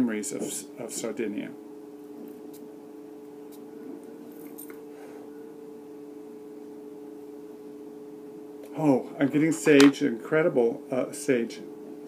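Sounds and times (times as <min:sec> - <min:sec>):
two-tone hum: 0:01.6 - 0:10.0.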